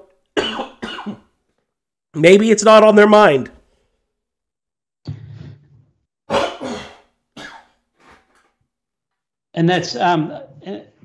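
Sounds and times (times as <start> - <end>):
man coughing and clearing throat: 0.4 - 1.4, 6.3 - 8.4.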